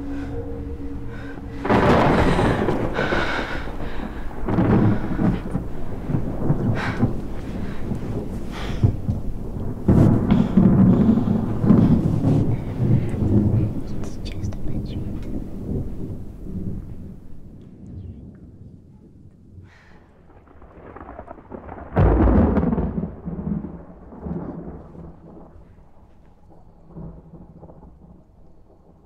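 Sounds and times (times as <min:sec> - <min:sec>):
loud thunderclap: 0:00.0 - 0:25.7, 0:26.5 - 0:29.0
rain: 0:00.0 - 0:29.0
thunder rumbling: 0:00.0 - 0:29.0.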